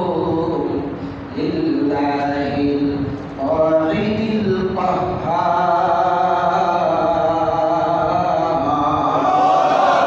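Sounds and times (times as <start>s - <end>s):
man chanting into microphone: 0.0s - 10.0s.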